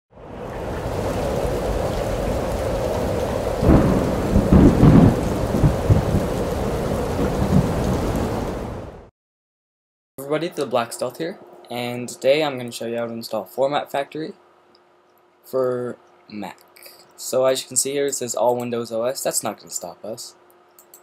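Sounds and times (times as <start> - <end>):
heavy rain: 0.2 - 9.1
rolling thunder: 0.2 - 9.1.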